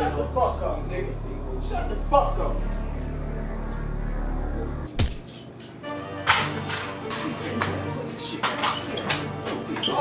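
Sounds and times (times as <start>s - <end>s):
film music sustained tones: 0.0s - 8.5s.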